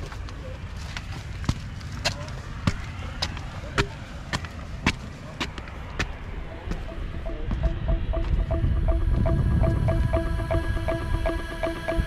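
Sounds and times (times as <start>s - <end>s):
footsteps on concrete steps: 0.0s - 8.3s
wind rumble on microphone: 6.2s - 12.0s.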